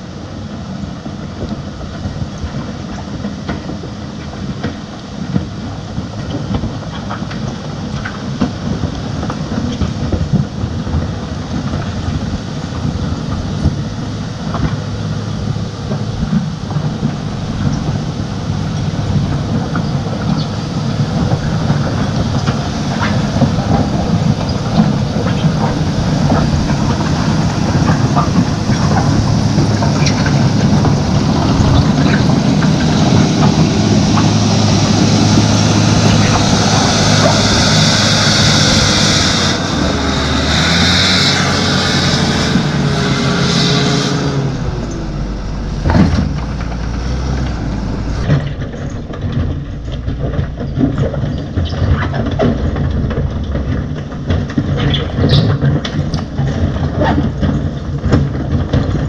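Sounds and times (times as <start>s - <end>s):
diesel engine working under load: 0.0s - 59.0s.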